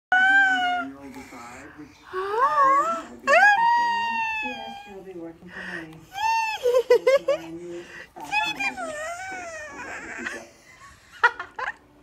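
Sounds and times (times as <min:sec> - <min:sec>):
baby cooing: 0:08.2 - 0:10.4.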